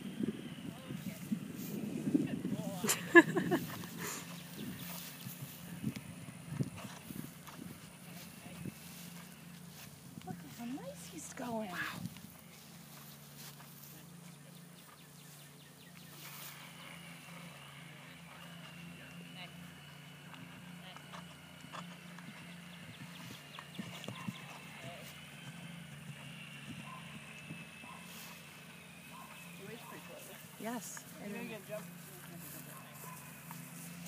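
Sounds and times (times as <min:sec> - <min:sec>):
horse hoofbeats on grass: 0:00.8 - 0:34.0.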